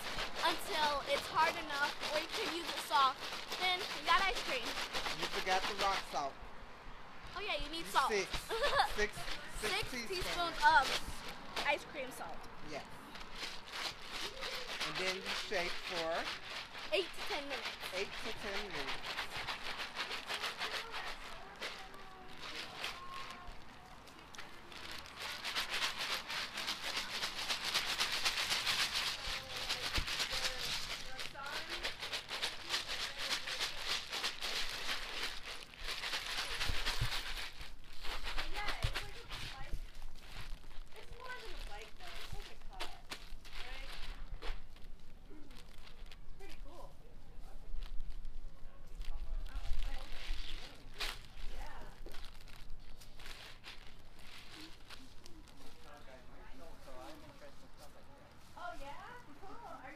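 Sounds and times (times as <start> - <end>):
plastic bag of ice crinkling and rattling: 0.0 - 6.3, 7.7 - 46.9, 47.7 - 57.3.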